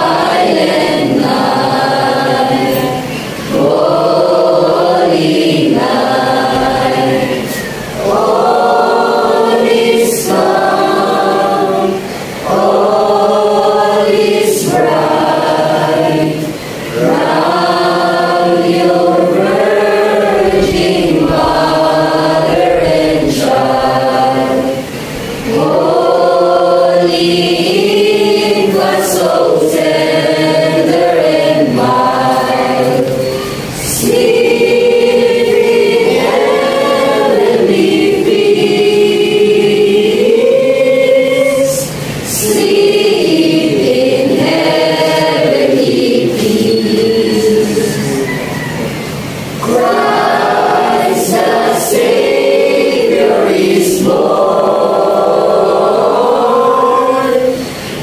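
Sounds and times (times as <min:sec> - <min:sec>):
children's choir singing: 0:00.0 - 0:58.0.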